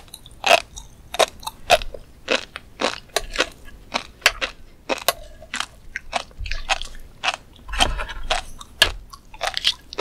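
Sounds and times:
chewing crunchy fish roe: 0.0s - 10.0s.

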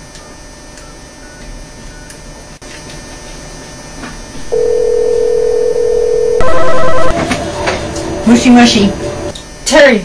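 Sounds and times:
steady telephone tone: 4.5s - 7.2s
telephone ringing: 4.5s - 7.2s.

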